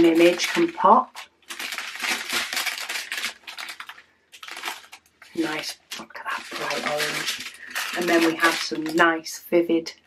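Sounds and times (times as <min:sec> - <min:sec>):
plastic bags crinkling: 0:00.0 - 0:09.4.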